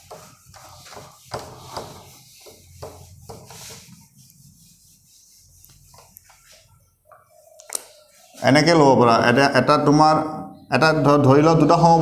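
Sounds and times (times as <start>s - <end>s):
eraser rubbing on whiteboard: 0.0s - 6.8s.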